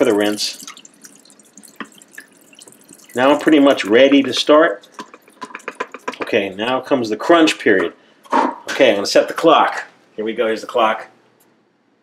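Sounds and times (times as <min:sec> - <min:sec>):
water stream splashing into sink: 0:00.0 - 0:06.4
water drips: 0:00.0 - 0:06.8.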